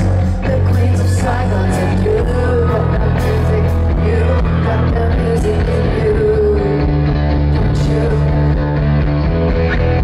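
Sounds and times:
electric guitar: 0.0 - 10.0
steady bass: 0.0 - 10.0.

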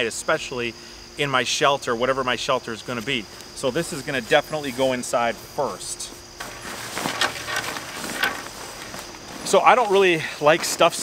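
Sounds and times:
high insect chirr: 0.0 - 11.0
nylon fabric rustling: 6.4 - 11.0.

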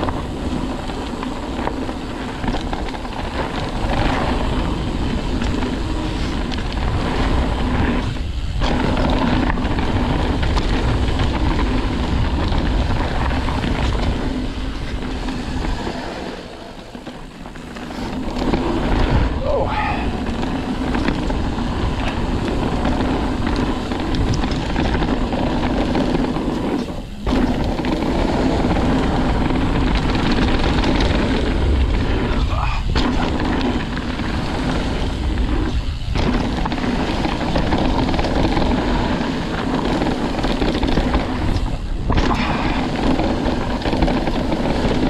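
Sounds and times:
bike tyres rolling on dirt: 0.0 - 45.0
wind on microphone: 0.0 - 45.0.

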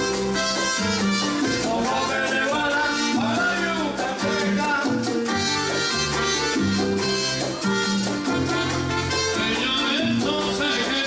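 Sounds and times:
live salsa band: 0.0 - 11.0.

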